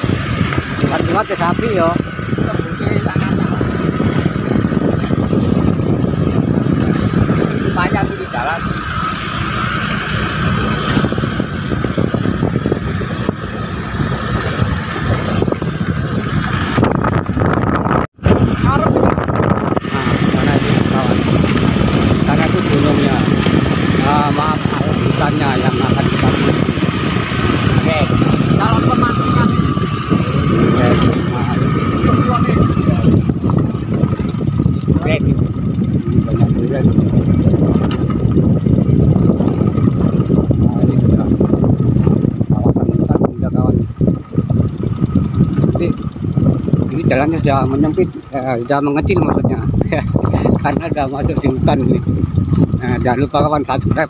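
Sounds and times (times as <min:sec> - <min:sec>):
small motorcycle riding on dirt: 0:00.0 - 0:54.0.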